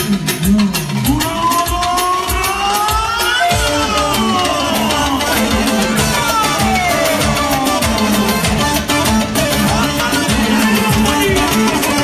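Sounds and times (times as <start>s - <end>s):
drum machine beat: 0.0s - 12.0s
electronic keyboard lead line: 0.0s - 12.0s.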